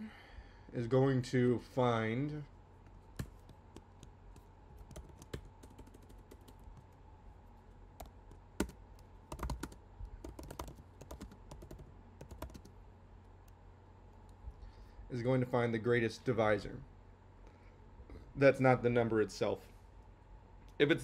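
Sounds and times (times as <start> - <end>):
computer keyboard typing: 3.2 - 7.0, 8.0 - 12.7.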